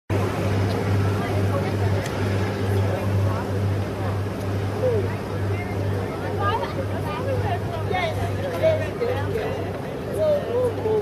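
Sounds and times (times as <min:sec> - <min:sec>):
boat engine drone: 0:00.1 - 0:11.0
people chatting indistinctly: 0:00.1 - 0:11.0.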